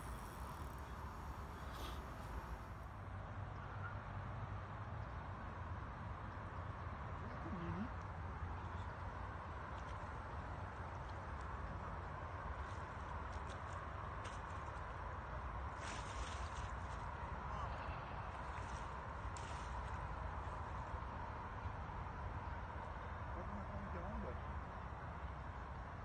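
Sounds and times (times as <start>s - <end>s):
outdoor background noise: 0.0s - 26.0s.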